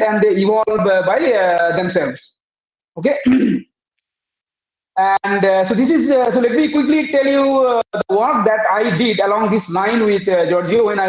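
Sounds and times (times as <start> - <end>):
man clearing his throat: 3.2 - 3.7
man speaking: 5.0 - 11.0.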